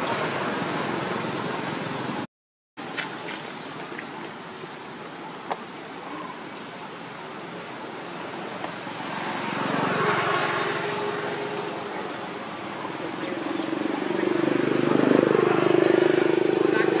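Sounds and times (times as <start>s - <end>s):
vehicle engine approaching: 8.7s - 17.0s.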